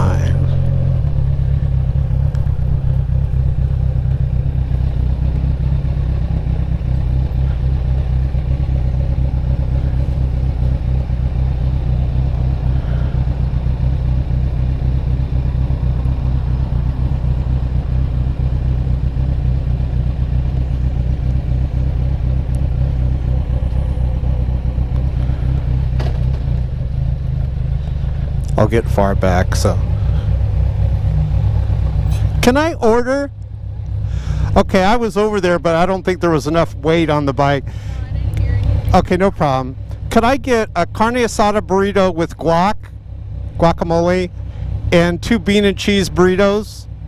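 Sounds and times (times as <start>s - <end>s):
motorcycle engine idling: 0.0s - 47.0s.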